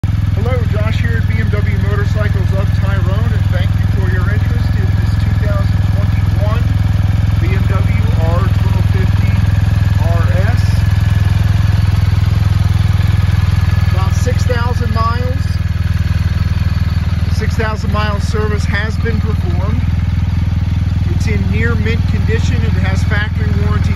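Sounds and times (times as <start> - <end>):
motorcycle engine idling: 0.0 - 23.9.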